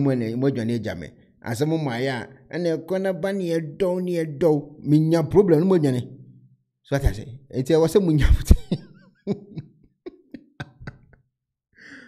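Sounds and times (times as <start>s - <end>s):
man laughing quietly: 8.6s - 11.2s
breathy sigh: 11.8s - 12.0s.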